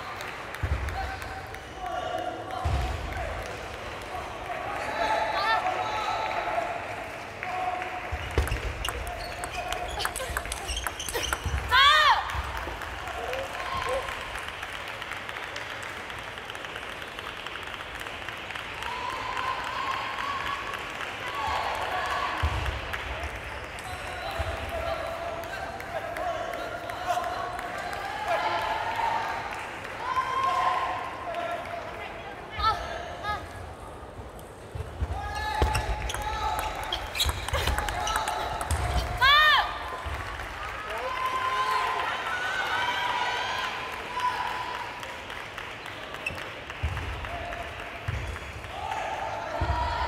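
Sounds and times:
voices in a hall: 0.0s - 50.0s.

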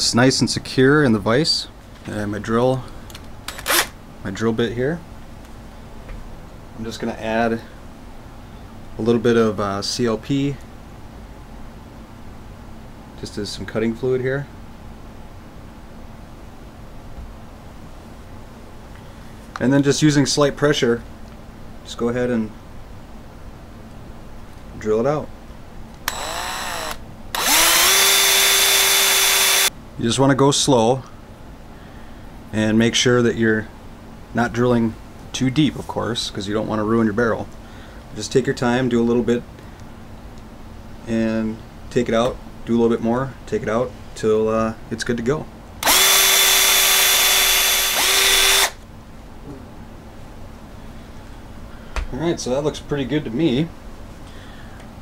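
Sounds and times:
electric drill whining into steel: 3.5s - 4.0s, 26.0s - 29.7s, 45.8s - 48.8s.

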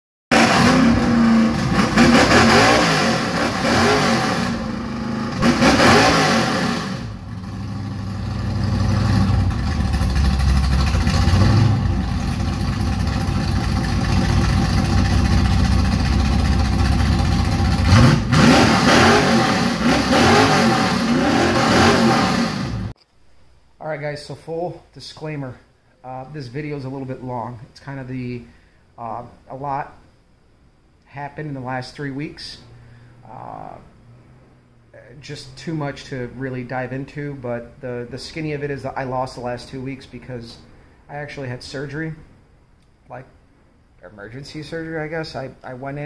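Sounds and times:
car engine revving: 0.3s - 22.9s.

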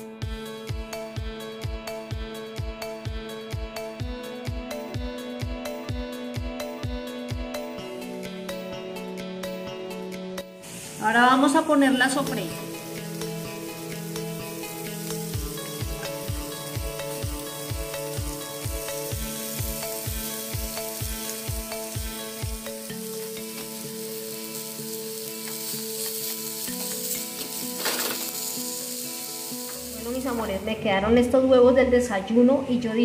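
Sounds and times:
background music with sustained chords: 0.0s - 33.0s
vegetables sizzling in hot oil: 10.6s - 30.7s.

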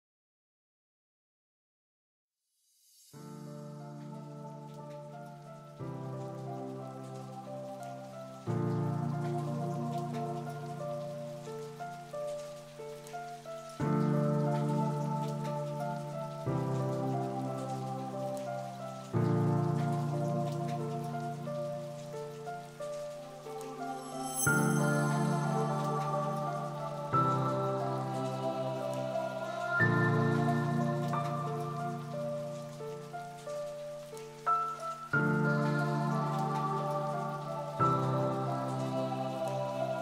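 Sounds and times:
steady rain: 2.9s - 40.0s.

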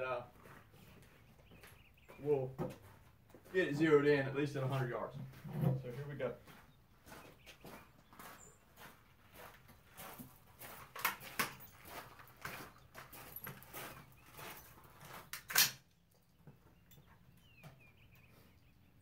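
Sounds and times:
rifle handling clicks and knocks: 10.9s - 11.8s, 15.1s - 16.3s.

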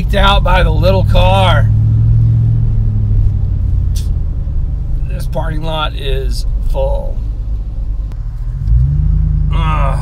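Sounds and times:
car engine: 0.0s - 10.0s
road rumble: 0.0s - 10.0s.

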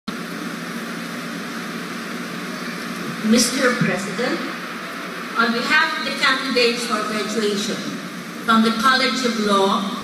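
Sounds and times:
electric fans hissing: 0.1s - 10.0s
hum of seated crowd: 0.1s - 10.0s.

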